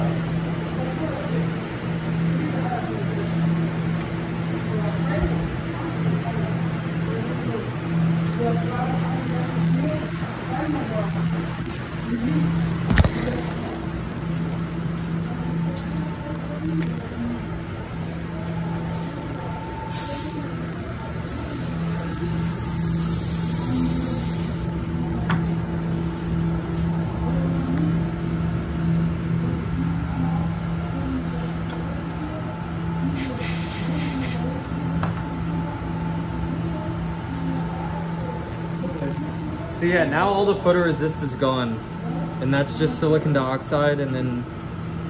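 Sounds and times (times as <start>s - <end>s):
air handling hum: 0.0s - 45.0s.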